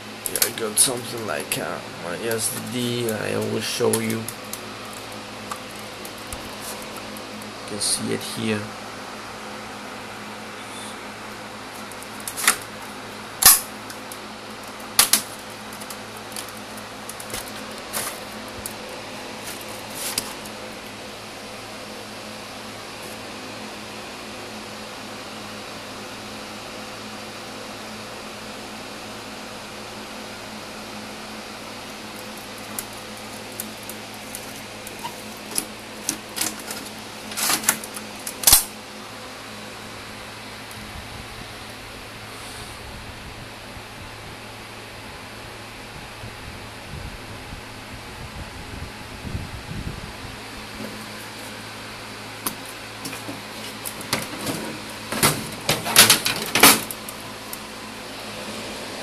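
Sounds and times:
computer cooling fans humming: 0.0s - 59.0s.

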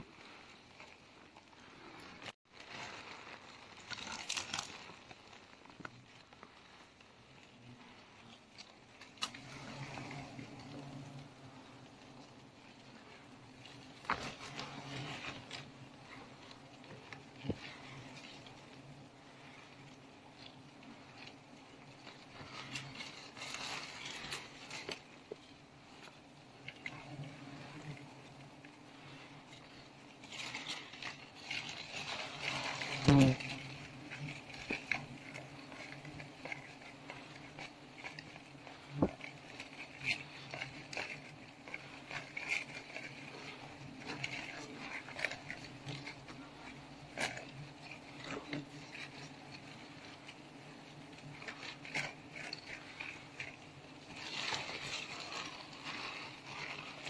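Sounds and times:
bee colony humming: 0.0s - 57.0s
leaves and twigs rustling: 0.0s - 57.0s.

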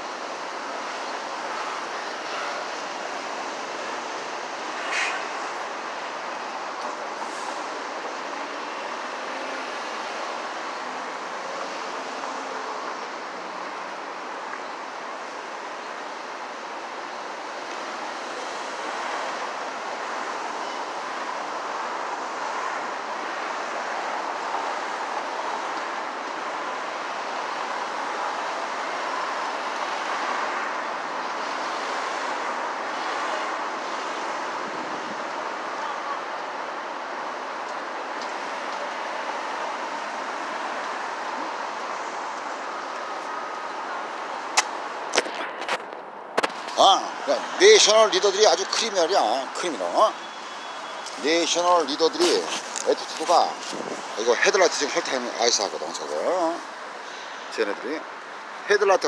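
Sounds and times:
city traffic hiss: 0.0s - 59.0s.

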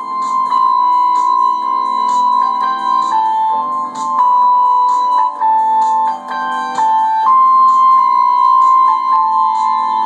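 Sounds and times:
electronic keyboard chords: 0.0s - 10.0s
soft high ticking beat: 0.0s - 10.0s.

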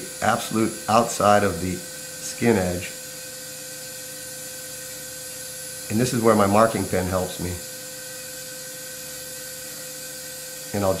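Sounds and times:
even hiss: 0.0s - 3.2s, 5.8s - 7.8s, 9.0s - 11.0s
steady electrical whine: 0.0s - 11.0s.

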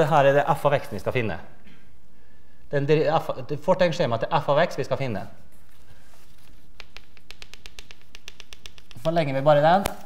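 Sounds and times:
chalk tapping on blackboard: 6.2s - 10.0s.

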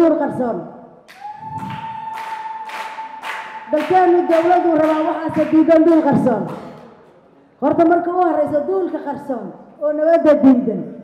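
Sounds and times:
hand claps: 1.1s - 5.8s.

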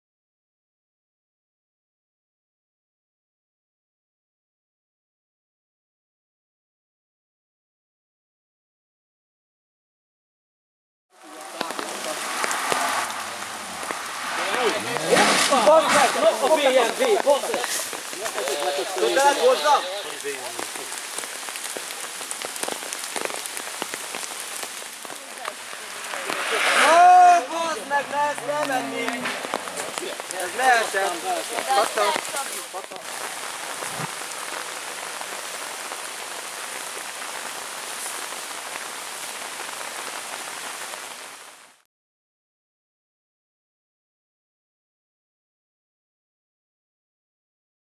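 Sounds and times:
rain hissing: 11.1s - 41.8s
raindrop clicks: 11.2s - 26.5s, 28.3s - 35.6s.

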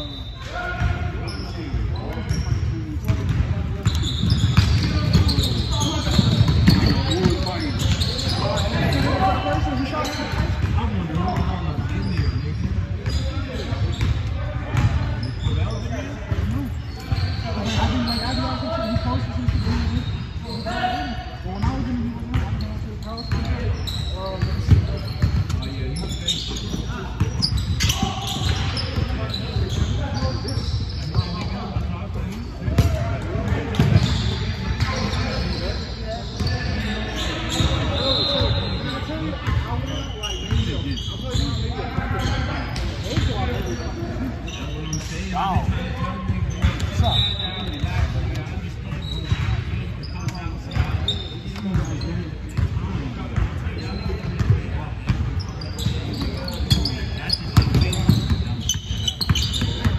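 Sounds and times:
shoe squeaks: 0.0s - 59.9s.

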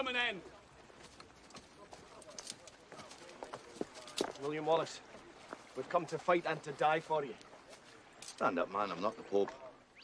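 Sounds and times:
footsteps on forest ground: 0.0s - 8.4s
horse hooves clip-clopping: 0.0s - 9.6s.

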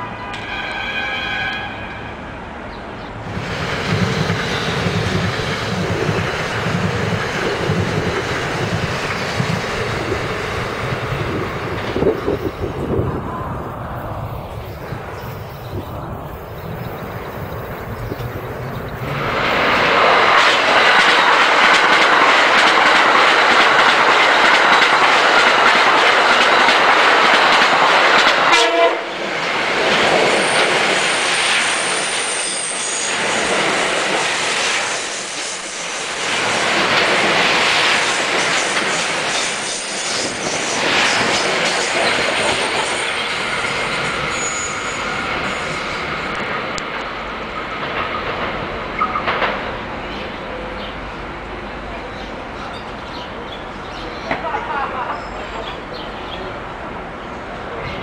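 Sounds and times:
electric train passing: 0.0s - 58.0s
wheels clattering over rail joints: 18.0s - 28.5s.

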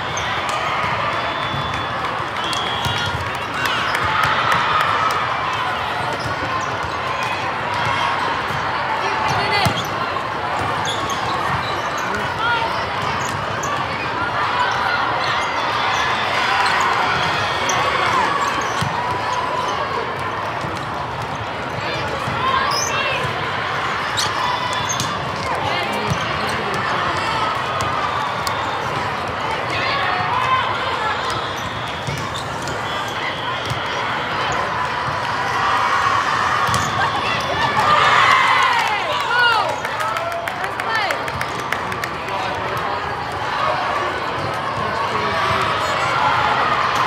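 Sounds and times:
volleyballs being hit and bouncing: 5.9s - 14.0s, 36.6s - 38.0s.

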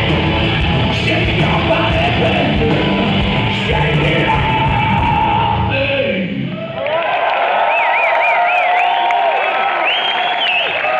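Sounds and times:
audience cheering and shouting: 0.0s - 10.9s
wavy whistle: 7.7s - 9.2s, 9.8s - 10.9s.

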